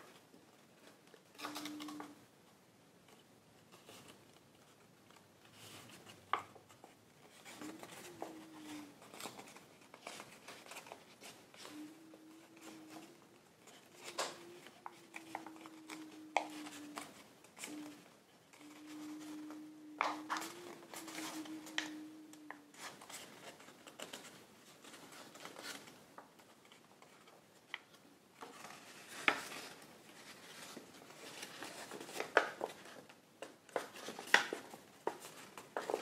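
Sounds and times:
faint low hum: 0.0 - 36.0
paper rustling and crinkling: 3.7 - 36.0.

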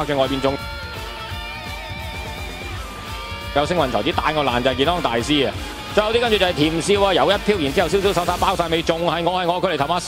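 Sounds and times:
fast speech: 0.0 - 0.7, 3.5 - 10.0
background music with held notes: 0.0 - 10.0.

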